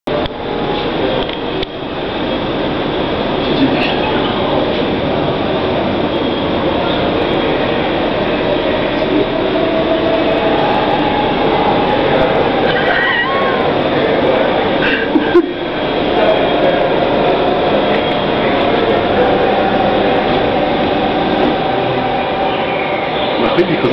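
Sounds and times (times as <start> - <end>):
loud steady rushing noise: 0.1 - 23.9
faint voices: 3.2 - 23.9.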